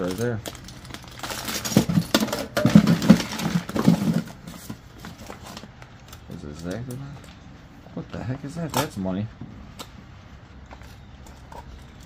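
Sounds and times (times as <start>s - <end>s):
plastic bag crinkling: 0.0s - 6.4s
rummaging in cardboard box: 0.0s - 7.3s.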